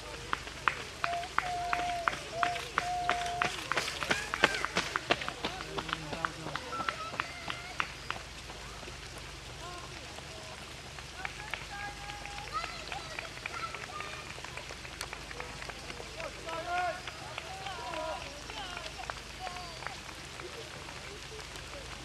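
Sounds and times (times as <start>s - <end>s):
running shoes slapping wet tarmac: 0.0s - 22.0s.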